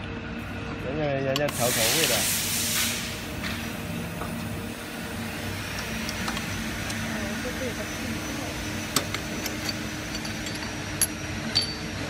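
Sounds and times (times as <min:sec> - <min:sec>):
steady background hum: 0:00.0 - 0:12.0
metallic clinks of pump parts: 0:08.9 - 0:12.0.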